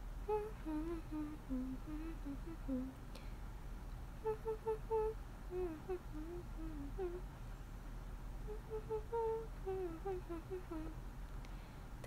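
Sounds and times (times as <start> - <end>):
woman humming softly: 0.3 - 3.0, 4.2 - 7.2, 8.4 - 11.0.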